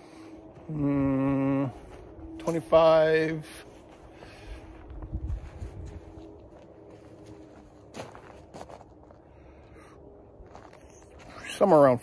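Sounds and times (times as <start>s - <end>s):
footsteps on grass: 1.6s - 9.4s.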